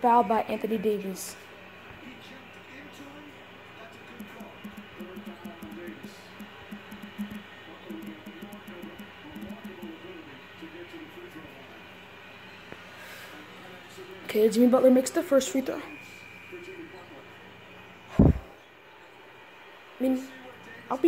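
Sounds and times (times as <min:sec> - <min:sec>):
faint clicks: 0:04.2 - 0:09.9.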